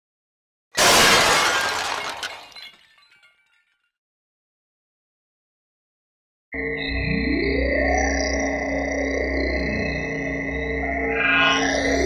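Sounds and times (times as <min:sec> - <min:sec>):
tinkling glass fragments: 0:00.8 - 0:03.6
glass shattering: 0:00.8 - 0:03.8.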